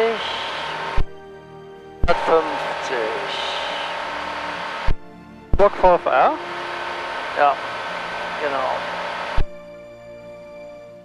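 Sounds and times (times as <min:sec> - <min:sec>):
light aircraft engine drone: 0:00.0 - 0:11.0.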